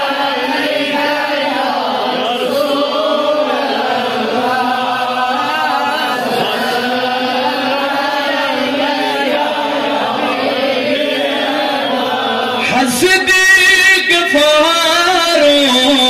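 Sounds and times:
man chanting solo: 12.6s - 16.0s.

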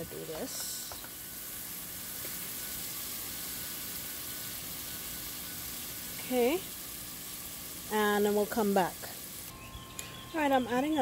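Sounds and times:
paste sizzling in hot oil: 0.0s - 9.5s.

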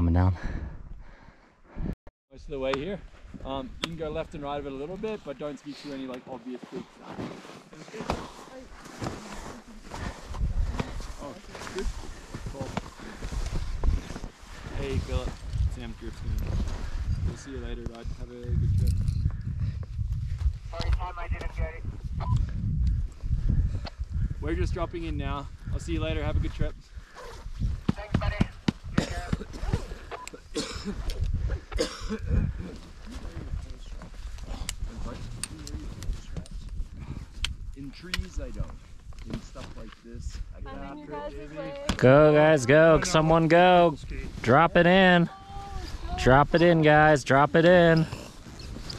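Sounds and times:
skis crunching in snow: 6.3s - 15.4s
wind buffeting microphone: 11.8s - 30.0s, 31.1s - 39.4s.

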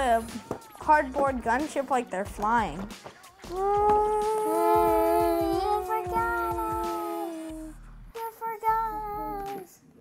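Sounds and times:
child humming wavering tone: 3.5s - 7.8s
children humming falling tones: 3.5s - 7.8s.

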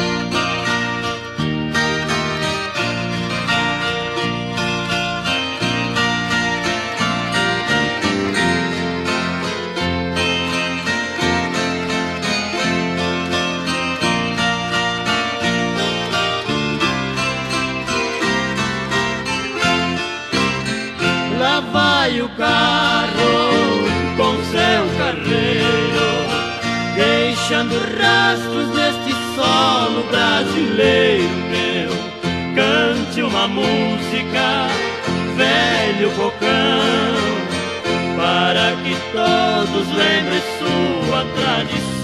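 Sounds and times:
plucked acoustic guitars: 0.0s - 42.0s
steady bass: 0.0s - 42.0s.

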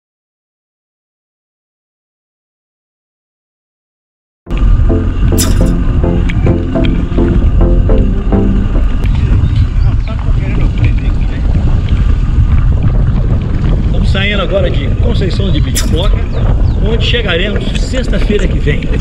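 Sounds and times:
quick stepped musical notes: 4.5s - 9.0s
wind buffeting microphone: 4.5s - 19.0s
bicycle rolling over cobblestones: 9.0s - 19.0s.

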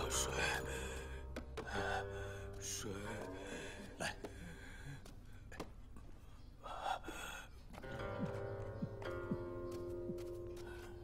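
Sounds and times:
plucked string music: 7.8s - 11.0s.

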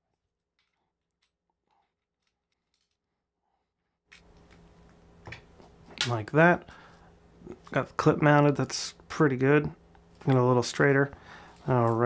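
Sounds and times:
low room hiss: 4.1s - 12.0s.

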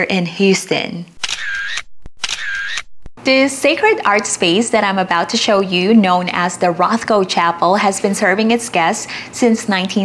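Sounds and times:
camera shutter sound effect: 1.2s - 3.0s.

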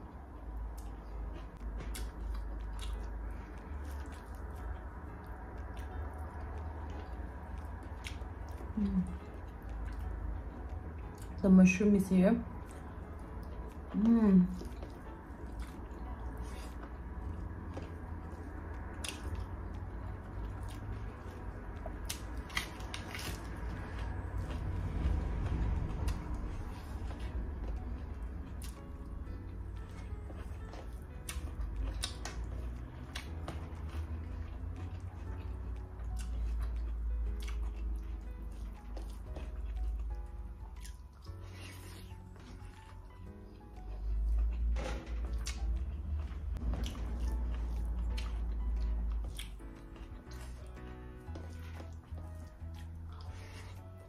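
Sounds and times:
person chewing food: 0.0s - 11.4s, 12.5s - 54.0s
soft background music: 0.0s - 54.0s.

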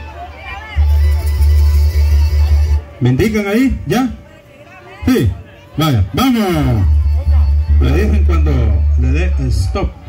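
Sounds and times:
loud music over loudspeaker: 0.0s - 10.0s.

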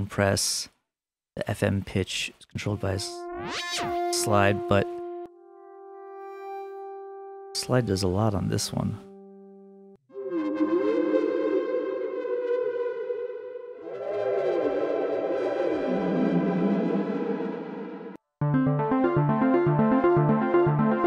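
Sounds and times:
synthesizer chords bending in pitch: 2.6s - 21.0s
synthesizer quick repeated notes: 2.8s - 8.0s.

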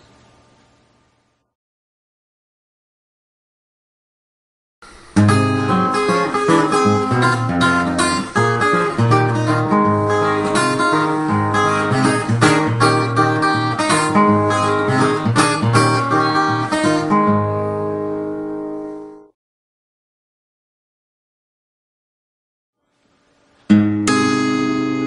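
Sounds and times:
fingerpicked acoustic guitar blues: 4.9s - 19.3s, 23.7s - 25.0s.

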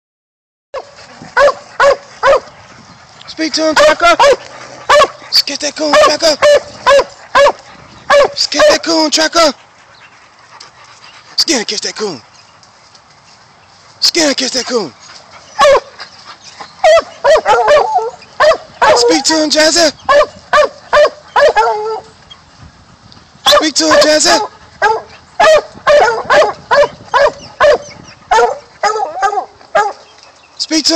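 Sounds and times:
dog barking: 0.8s - 2.5s, 3.8s - 5.2s, 5.9s - 8.7s, 15.6s - 15.9s, 16.8s - 19.2s, 20.1s - 22.1s, 23.5s - 30.0s.

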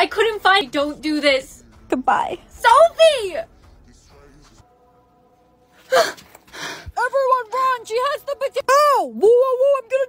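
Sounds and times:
woman gasping: 5.8s - 6.9s.

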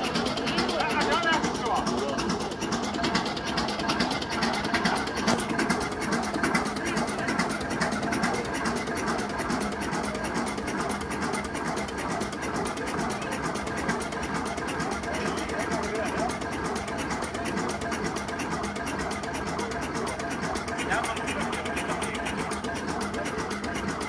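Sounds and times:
diesel engine knocking: 0.0s - 24.0s.

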